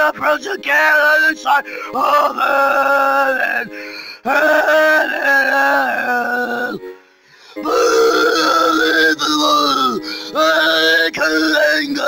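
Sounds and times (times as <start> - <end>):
person singing long notes: 0.0 - 6.9, 7.5 - 12.0.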